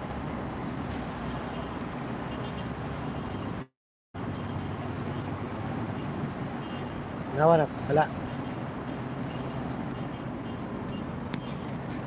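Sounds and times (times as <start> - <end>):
cars driving slowly past: 0.0 - 12.0.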